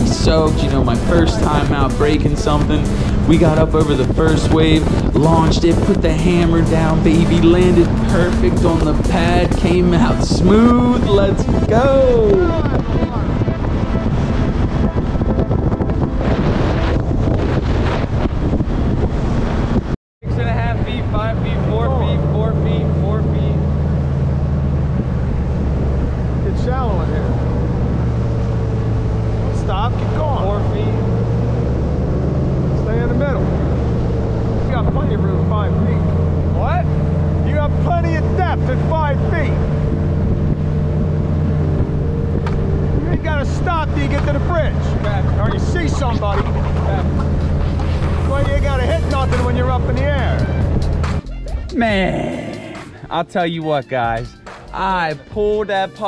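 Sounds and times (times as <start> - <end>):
outboard motor running: 0.0 - 19.8, 20.4 - 51.7
wind rushing over microphone: 0.0 - 53.4.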